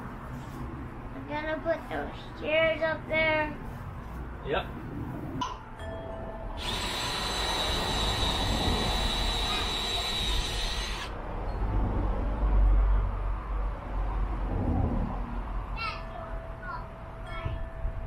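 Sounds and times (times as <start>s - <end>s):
power drill whining: 6.6s - 11.1s.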